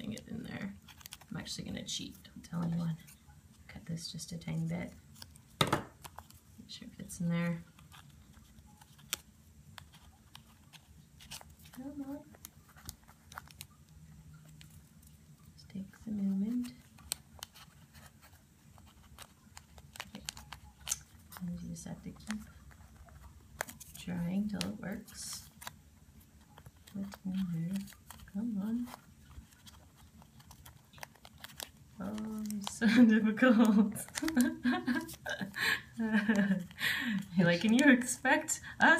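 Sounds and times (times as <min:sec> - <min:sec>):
paper rustling and crinkling: 0:00.0 - 0:03.2, 0:04.4 - 0:06.8, 0:07.6 - 0:38.2
paper crinkling in short snaps: 0:33.6 - 0:35.2.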